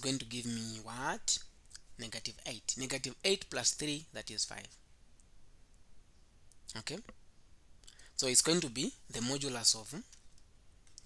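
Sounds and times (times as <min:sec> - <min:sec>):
man speaking: 0:00.0 - 0:04.8, 0:06.7 - 0:07.2, 0:08.2 - 0:10.2.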